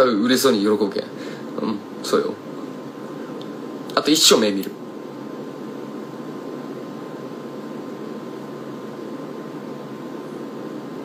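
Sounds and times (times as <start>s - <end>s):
faint thin whine: 0.0s - 11.0s
low room hiss: 0.0s - 11.0s.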